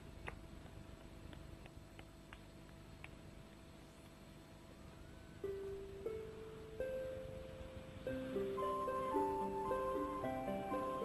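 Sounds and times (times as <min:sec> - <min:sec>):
soft background music: 0:04.8 - 0:11.0
held musical notes: 0:05.0 - 0:11.0.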